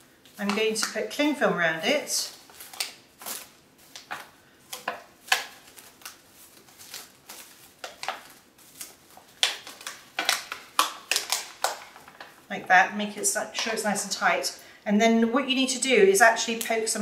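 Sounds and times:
cling film crinkling: 0:00.2 - 0:13.8.

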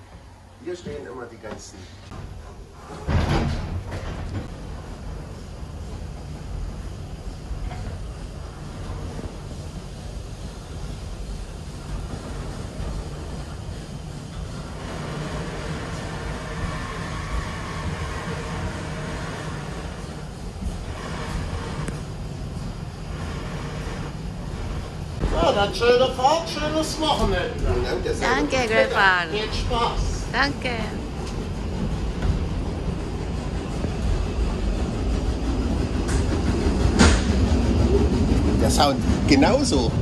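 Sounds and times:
wheels rumbling on track: 0:03.7 - 0:40.0.

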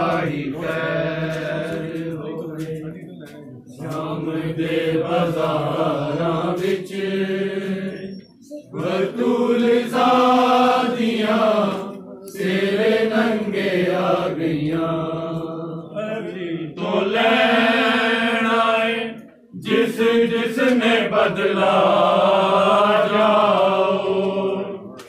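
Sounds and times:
men chanting a lament: 0:00.0 - 0:08.1, 0:08.7 - 0:24.9.

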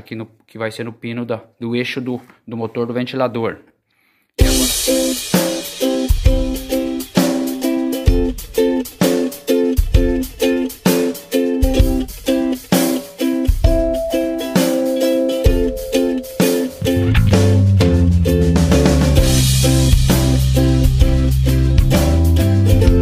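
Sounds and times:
drum kit beat: 0:04.4 - 0:23.0
upbeat music with plucked strings: 0:04.4 - 0:23.0.

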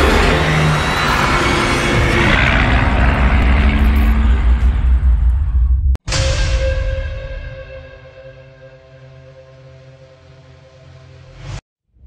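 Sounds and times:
heavy low rumble: 0:00.0 - 0:06.0
intro soundtrack music: 0:00.0 - 0:11.6.

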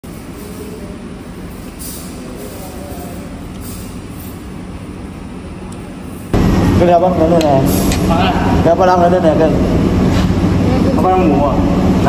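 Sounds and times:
restaurant background rumble: 0:00.0 - 0:12.0.

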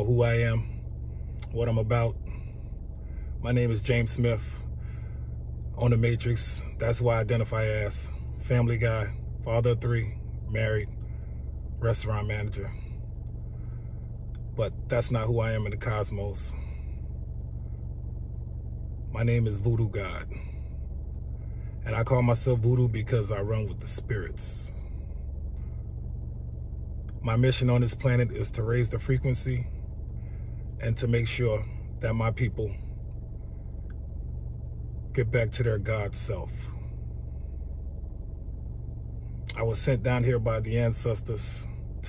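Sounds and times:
car engine idling: 0:00.0 - 0:42.0
faint steady hum: 0:00.0 - 0:42.0.

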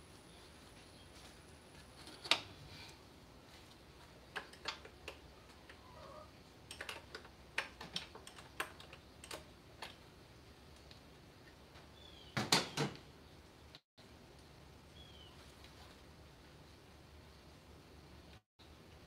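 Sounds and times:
clicks and taps of hand tools: 0:04.3 - 0:05.8.

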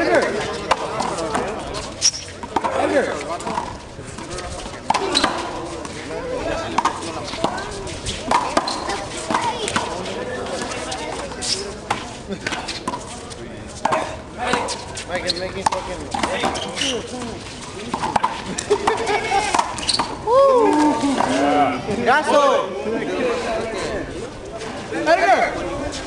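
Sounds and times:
players' voices: 0:00.0 - 0:26.0.

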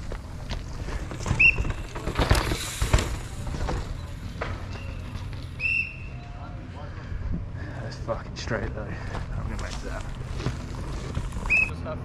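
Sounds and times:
footsteps crunching on dirt and rock: 0:08.9 - 0:11.7.

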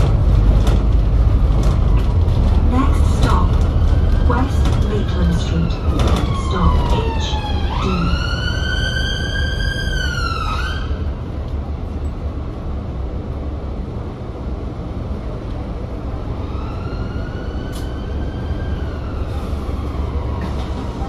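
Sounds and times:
bus engine and road noise: 0:00.0 - 0:21.0
emergency siren wailing: 0:03.3 - 0:11.0, 0:16.4 - 0:20.6.

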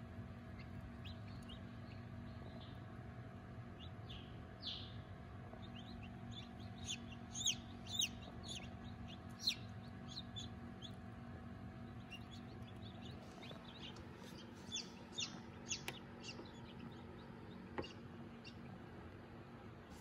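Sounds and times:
incubator humming: 0:00.0 - 0:20.0
chicks peeping: 0:00.2 - 0:19.2.

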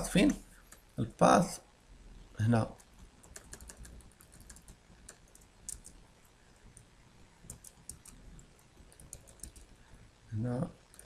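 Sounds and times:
computer keyboard key clicks: 0:03.3 - 0:06.0, 0:07.5 - 0:08.2.

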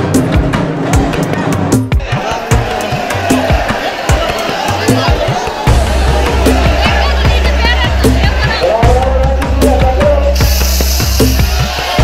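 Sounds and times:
heavy bass: 0:00.0 - 0:12.0
steady drum beat: 0:00.0 - 0:12.0
person singing: 0:08.4 - 0:12.0
bright hiss: 0:10.4 - 0:12.0.

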